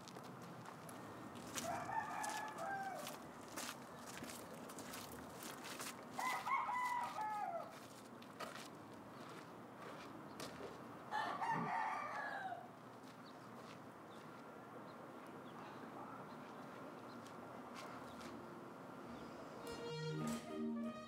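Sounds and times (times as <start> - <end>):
rooster crowing: 1.5 - 3.2, 6.2 - 7.8, 11.1 - 12.7.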